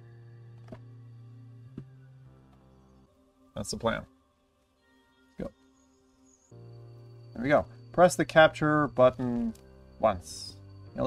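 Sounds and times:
sustained background music: 0.0 - 11.0.

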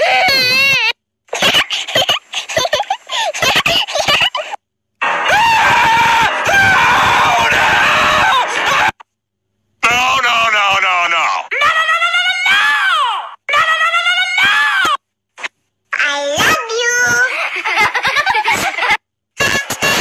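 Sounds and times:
loud screaming: 5.0 - 9.0, 11.5 - 15.0.

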